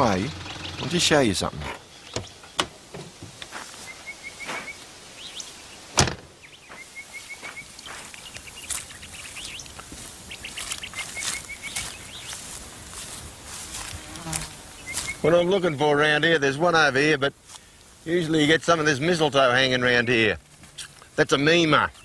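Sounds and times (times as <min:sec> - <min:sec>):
bird chirping: 0:00.0 - 0:03.1, 0:03.7 - 0:16.9, 0:17.6 - 0:22.0
sharp thump: 0:06.0 - 0:06.4
faint rustles and ticks: 0:06.6 - 0:15.2, 0:17.4 - 0:22.0.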